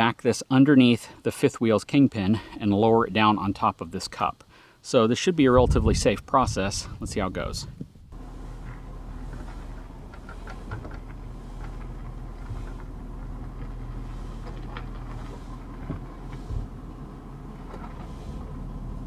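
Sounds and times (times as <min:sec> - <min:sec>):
truck engine humming: 0:08.1 - 0:19.0.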